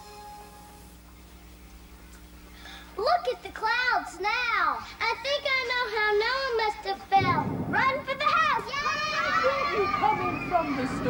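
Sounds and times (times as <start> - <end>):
young children calling out: 3.0 - 11.0.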